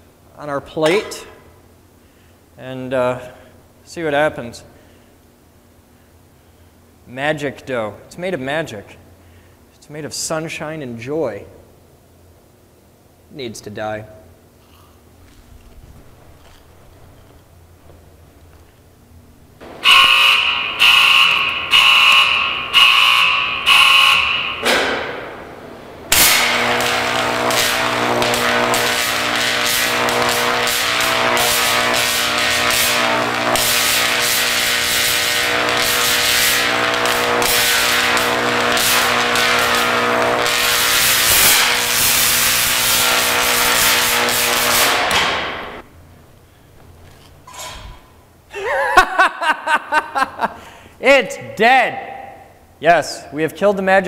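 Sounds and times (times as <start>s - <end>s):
electric arc buzzing and crackling: 15.1s - 48.2s.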